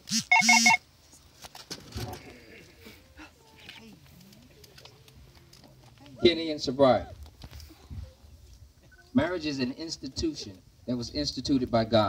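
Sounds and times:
short electronic beeps: 0.1 - 0.8.

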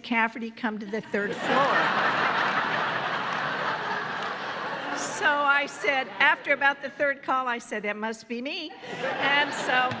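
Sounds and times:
large audience laughing: 0.9 - 7.0, 8.7 - 10.0.

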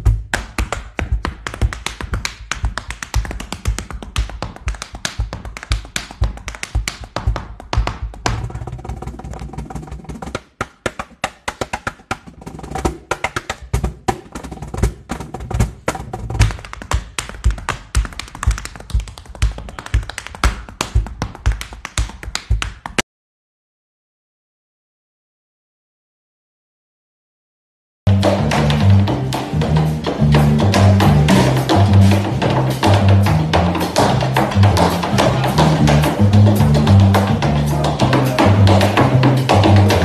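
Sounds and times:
cajon bass thumps and slaps: 0.0 - 23.0, 28.1 - 40.0.

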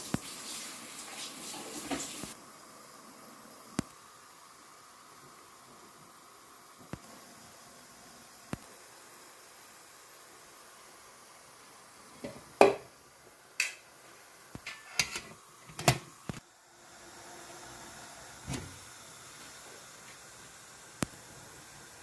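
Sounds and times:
faint hiss of steam: 0.0 - 22.0.

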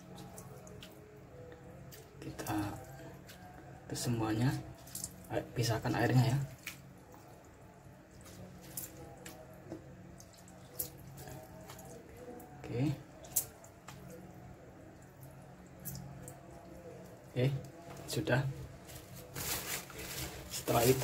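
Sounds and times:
wet clicks and drips: 0.0 - 2.5, 4.8 - 5.3, 6.3 - 12.5, 13.2 - 14.3, 14.9 - 17.8
low steady hum: 0.0 - 21.0.

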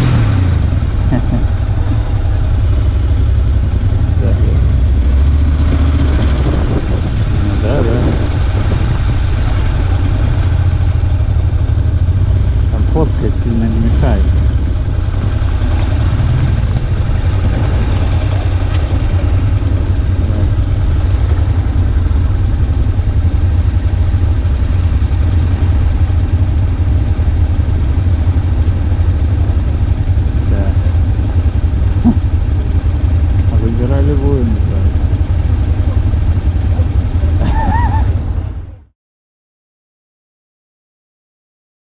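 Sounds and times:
wind noise: 0.0 - 12.0, 14.2 - 25.3
motorcycle engine rumble: 0.0 - 38.9
person speaking: 7.3 - 8.4, 12.8 - 14.4.

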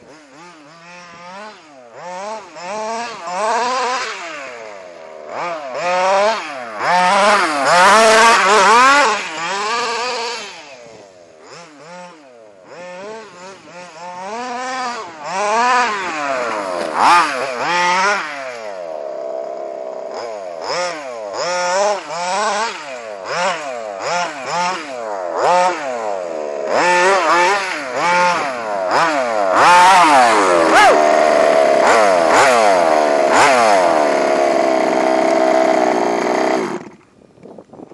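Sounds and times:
two-stroke engine revving: 0.0 - 37.2.

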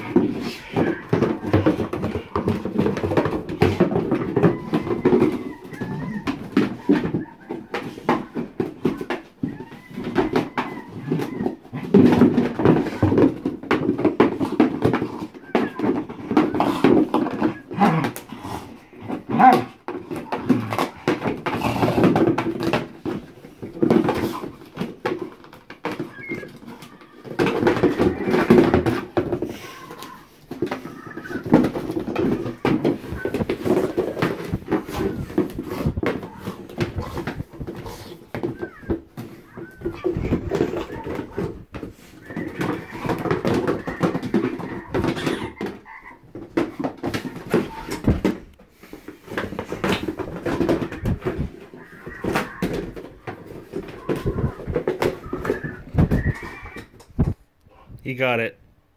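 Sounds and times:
dog scratching cardboard box: 0.0 - 56.9
ball clicking inside box: 0.0 - 57.4.

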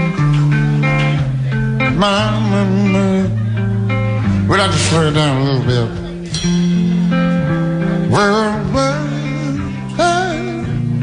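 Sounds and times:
bass guitar notes: 0.0 - 11.0
electric guitar lines: 0.0 - 11.0.

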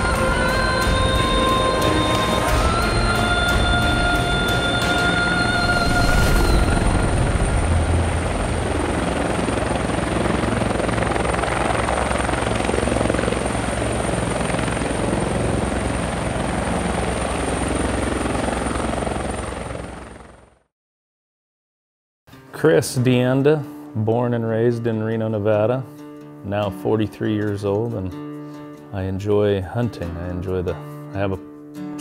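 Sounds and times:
thin high whine: 0.0 - 11.0
helicopter rotor chop: 0.0 - 20.5.

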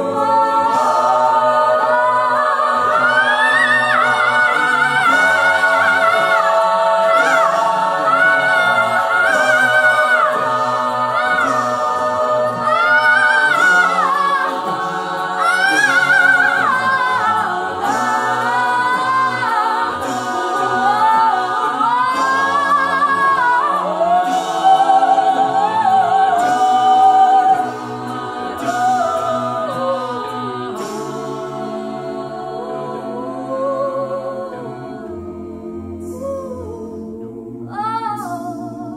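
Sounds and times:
a cappella choir singing: 0.0 - 38.9.

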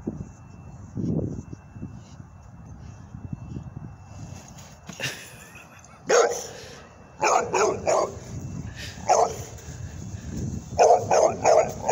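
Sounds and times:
dog barking: 6.1 - 6.5, 7.2 - 8.2, 9.1 - 9.5, 10.8 - 11.9.

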